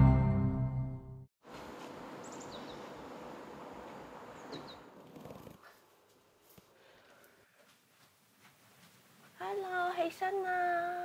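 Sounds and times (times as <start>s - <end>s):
outdoor background noise: 1.4s - 11.0s.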